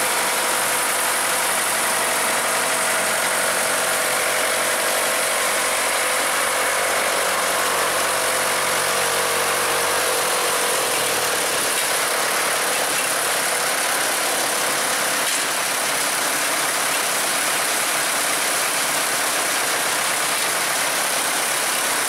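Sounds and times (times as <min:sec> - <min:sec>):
tractor engine running: 0:00.0 - 0:22.0.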